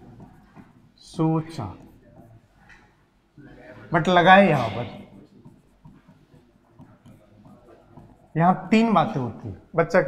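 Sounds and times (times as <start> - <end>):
marker writing on a board: 0.0 - 3.1, 3.8 - 9.8.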